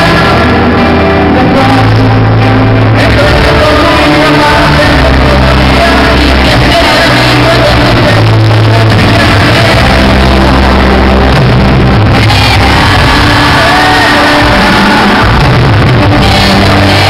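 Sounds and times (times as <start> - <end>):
bass: 0.0 - 17.0
drums: 0.0 - 17.0
lead voice singing: 0.0 - 17.0
piano: 0.0 - 17.0
crowd shouting along: 9.0 - 17.0.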